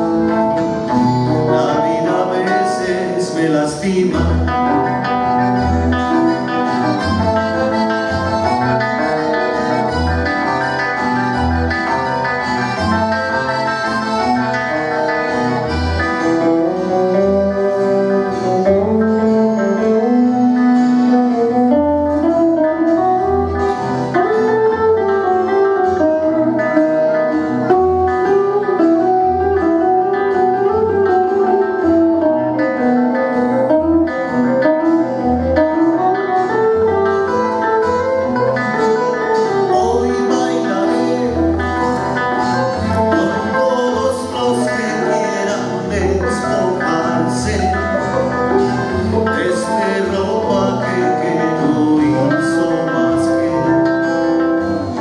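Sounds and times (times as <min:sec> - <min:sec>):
accordion: 0:00.0 - 0:55.0
guitars strumming and picking: 0:00.0 - 0:55.0.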